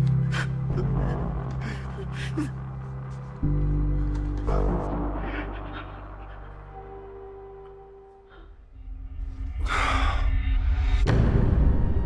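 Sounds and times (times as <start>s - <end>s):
low droning film score: 0.0s - 12.0s.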